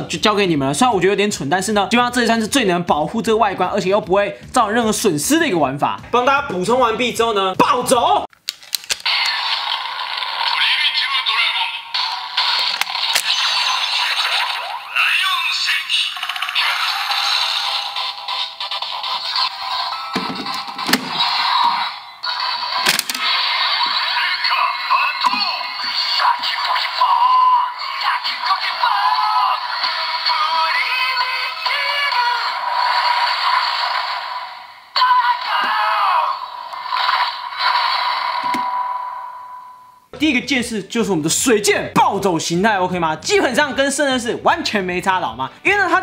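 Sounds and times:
toy electronic announcer voice: 0:09.1 - 0:22.0, 0:22.6 - 0:33.6, 0:34.9 - 0:36.5
toy chanting and music: 0:10.5 - 0:23.2, 0:23.8 - 0:33.6.

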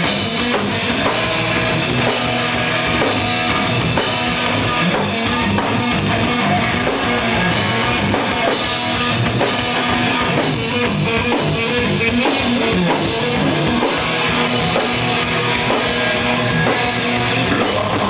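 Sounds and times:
drum kit: 0:00.0 - 0:18.0
electric guitar: 0:00.0 - 0:18.0.

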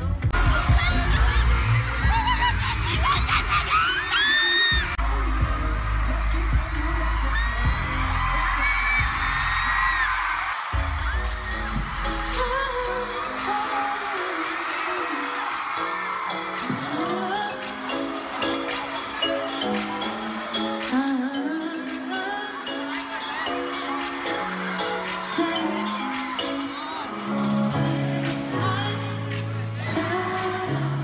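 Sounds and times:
live pop music with singing: 0:00.0 - 0:31.0
fans screaming: 0:00.3 - 0:28.0
high ticking beat: 0:14.6 - 0:27.8.

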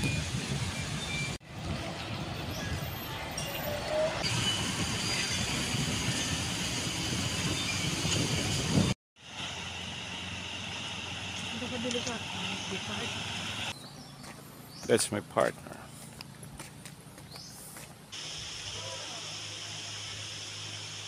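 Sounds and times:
cars passing: 0:09.2 - 0:18.1.

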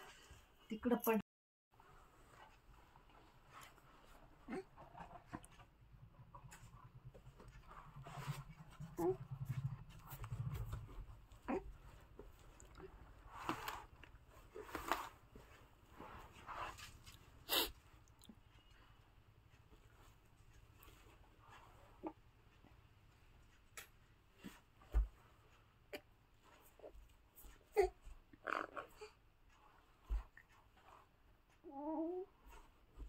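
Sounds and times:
baby vocal sounds: 0:31.7 - 0:32.3.

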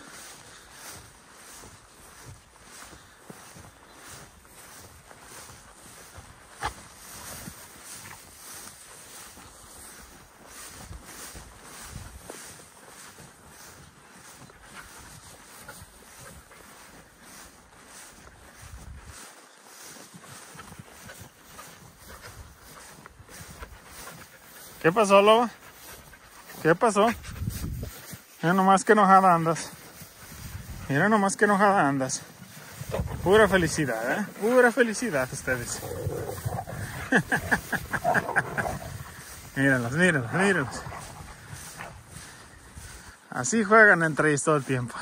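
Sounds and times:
footsteps through tall grass: 0:00.0 - 0:45.0
wind rumbling on microphone: 0:02.1 - 0:16.2, 0:16.8 - 0:19.3, 0:27.1 - 0:28.2, 0:30.2 - 0:30.9, 0:32.4 - 0:33.9, 0:35.3 - 0:39.6, 0:40.2 - 0:43.1.

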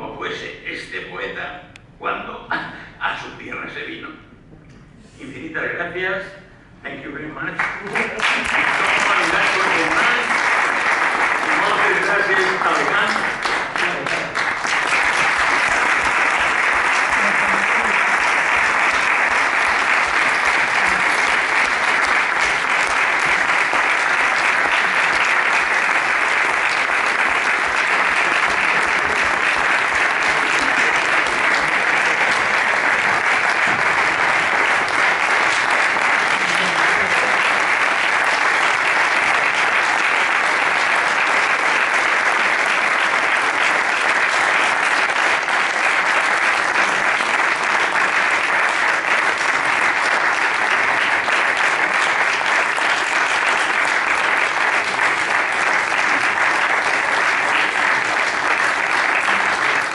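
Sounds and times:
audience applauding: 0:07.6 - 0:59.9.

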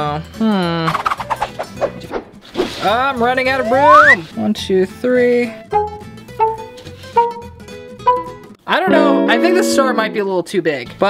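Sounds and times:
plucked pizzicato string music: 0:05.7 - 0:10.3.

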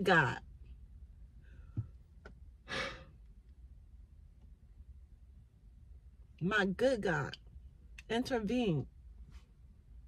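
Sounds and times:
woman sighing: 0:02.7 - 0:03.1.

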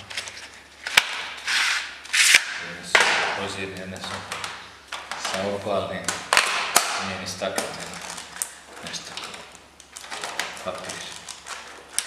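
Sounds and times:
short hissing scrapes: 0:01.5 - 0:02.4.

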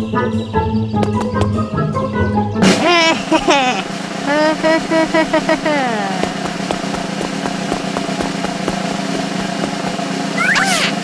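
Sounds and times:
cartoon character vocalising: 0:10.4 - 0:11.0.

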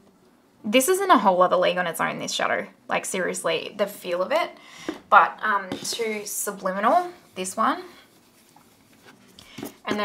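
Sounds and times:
person speaking: 0:05.1 - 0:08.4.

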